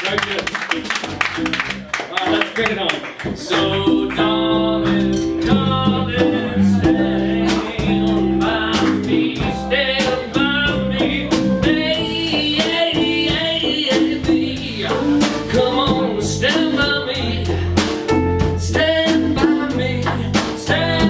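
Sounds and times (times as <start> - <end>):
live rock band playing: 0.0 - 21.0
steady drum beat: 0.0 - 21.0
man singing: 3.3 - 21.0.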